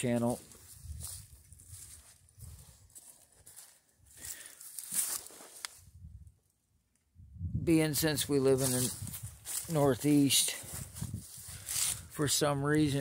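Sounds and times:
footsteps on dry leaves: 0:00.0 - 0:05.8, 0:08.3 - 0:13.0.

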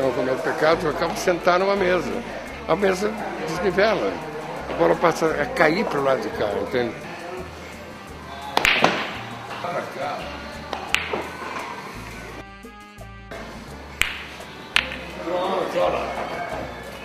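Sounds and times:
background music: 0:00.0 - 0:17.0
billiard balls clicking: 0:10.7 - 0:11.8, 0:14.0 - 0:15.2.

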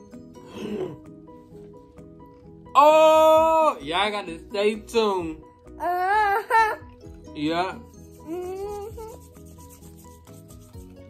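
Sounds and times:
palms rubbing together: 0:07.8 - 0:11.0.

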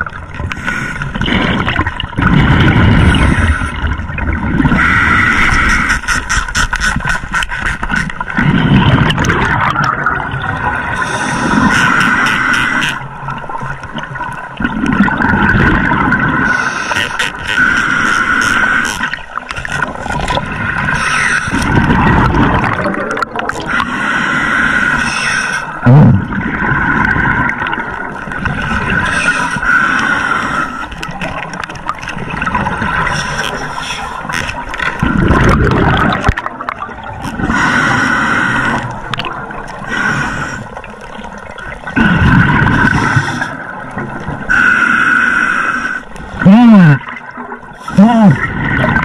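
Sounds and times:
exhaled bubbles rumbling: 0:00.0 - 0:05.8, 0:07.8 - 0:11.7, 0:13.0 - 0:16.6, 0:19.0 - 0:23.9, 0:25.8 - 0:29.2, 0:30.9 - 0:33.6, 0:34.2 - 0:37.7, 0:38.7 - 0:40.0, 0:40.6 - 0:44.5, 0:46.3 - 0:49.0
regulator hissing inhale: 0:11.0 - 0:13.0, 0:16.5 - 0:19.0, 0:23.7 - 0:25.8, 0:37.5 - 0:38.9, 0:39.8 - 0:40.8, 0:44.5 - 0:46.2.

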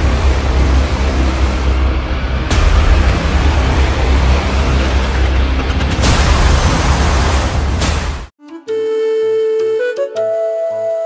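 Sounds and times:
noisy hiss-like wash: 0:00.0 - 0:05.2
deep steady rumble: 0:00.0 - 0:08.3.

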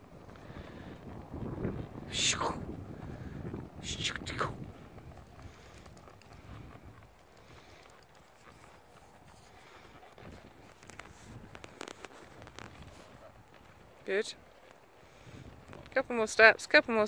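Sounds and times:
horse hoofbeats on dirt: 0:00.0 - 0:17.0.

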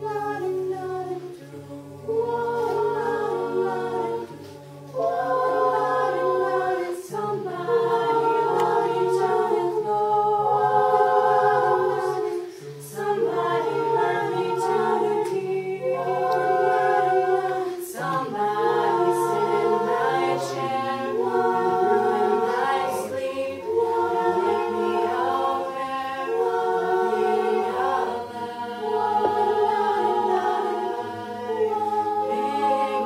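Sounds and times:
a cappella group singing in harmony: 0:00.0 - 0:33.0.

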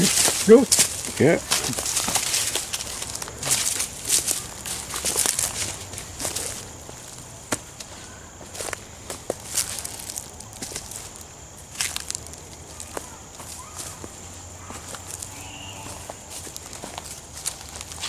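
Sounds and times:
footsteps crunching on dry leaves: 0:00.0 - 0:18.0
twigs cracking: 0:00.0 - 0:18.0.

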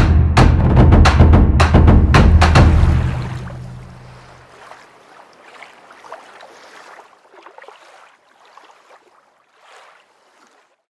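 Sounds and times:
running water gurgling: 0:02.5 - 0:10.8.

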